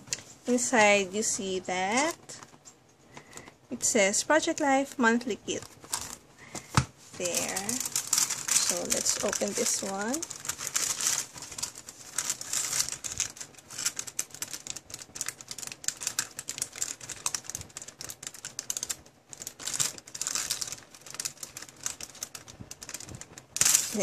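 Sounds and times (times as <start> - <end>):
tissue paper rustling: 5.5 - 24.0.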